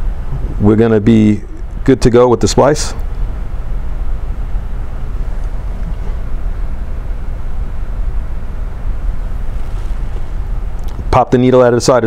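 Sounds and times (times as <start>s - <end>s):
low rumble: 0.0s - 11.1s.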